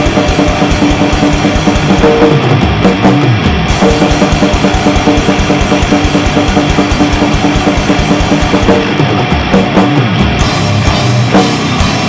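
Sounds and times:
distorted guitar: 0:00.0 - 0:12.0
fast drumming: 0:00.0 - 0:12.0.

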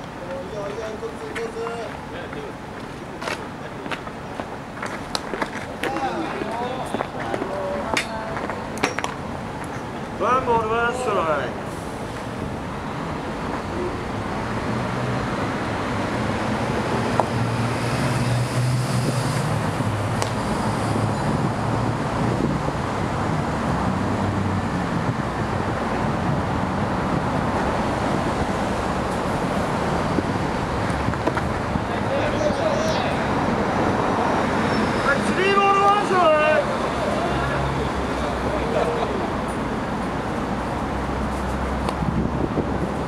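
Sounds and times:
road traffic noise: 0:00.0 - 0:43.0.

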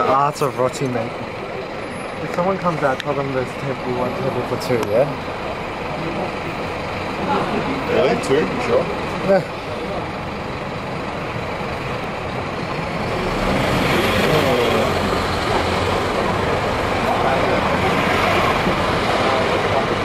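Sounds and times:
restaurant rumble: 0:00.0 - 0:20.0
voices chattering: 0:00.0 - 0:20.0.

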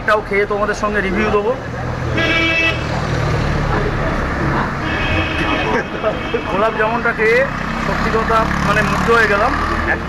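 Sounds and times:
street traffic noise: 0:00.0 - 0:10.0
vehicle horn honking: 0:02.2 - 0:02.9, 0:04.8 - 0:06.8.

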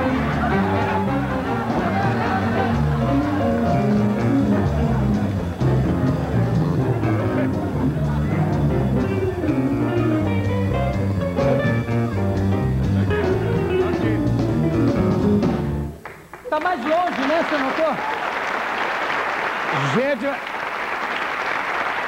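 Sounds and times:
audience applause: 0:00.0 - 0:05.5, 0:16.0 - 0:22.0
voices: 0:00.0 - 0:10.0
walking bass line: 0:00.0 - 0:16.0
live jazz band playing: 0:00.0 - 0:16.1.

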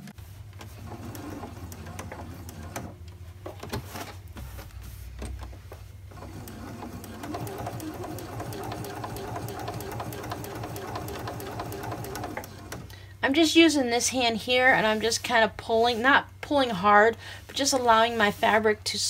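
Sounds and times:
sewing machine stitching: 0:00.6 - 0:03.0, 0:06.1 - 0:12.9.

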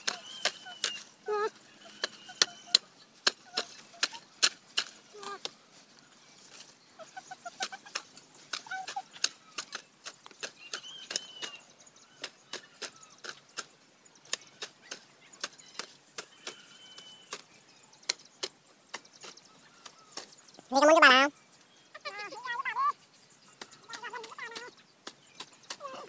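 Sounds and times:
hoe chopping into dry soil: 0:01.8 - 0:05.6.

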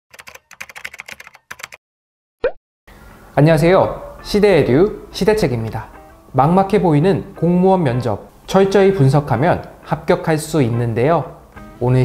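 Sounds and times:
computer keyboard typing: 0:00.1 - 0:01.8.

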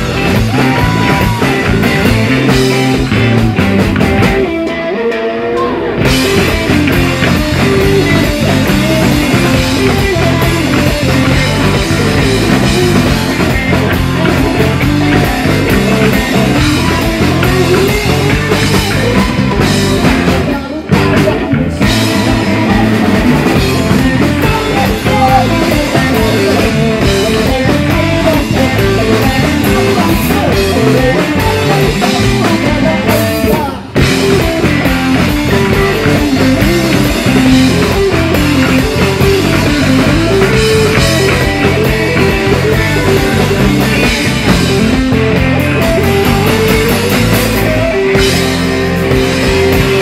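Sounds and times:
drum kit: 0:00.0 - 0:50.0
electric bass: 0:00.0 - 0:50.0
electric guitar: 0:00.0 - 0:50.0.

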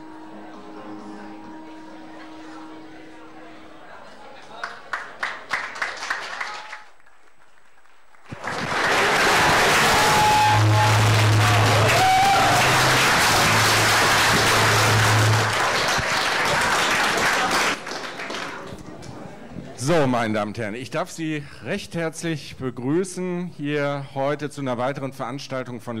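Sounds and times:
steady low hum: 0:00.0 - 0:04.5
audience applauding: 0:04.5 - 0:18.8.

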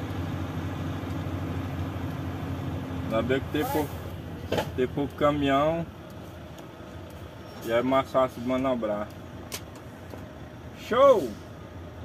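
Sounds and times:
truck engine running: 0:00.0 - 0:12.0
man talking: 0:03.0 - 0:04.0, 0:04.6 - 0:05.9, 0:07.6 - 0:09.2, 0:10.8 - 0:11.4.

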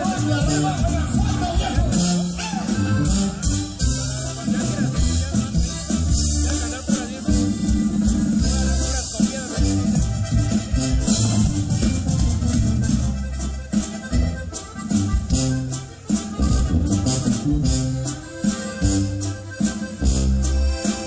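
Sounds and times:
live band with accordion: 0:00.0 - 0:21.0.

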